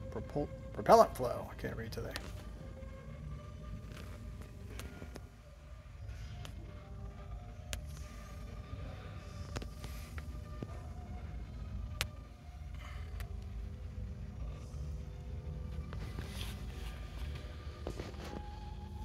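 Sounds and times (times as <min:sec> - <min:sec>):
faint background music: 0:00.0 - 0:19.0
low room rumble: 0:00.0 - 0:19.0.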